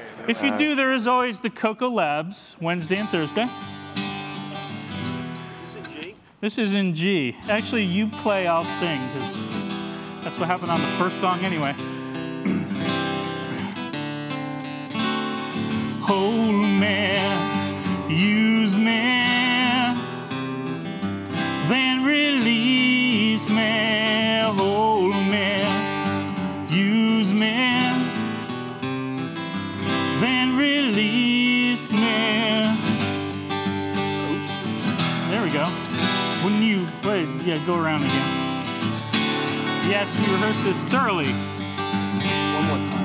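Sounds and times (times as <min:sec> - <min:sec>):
acoustic guitars playing: 0:00.0 - 0:43.0.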